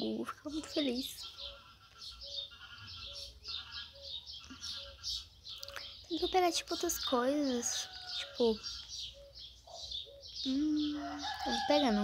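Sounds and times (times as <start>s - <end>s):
bird calling: 0.0s - 12.0s.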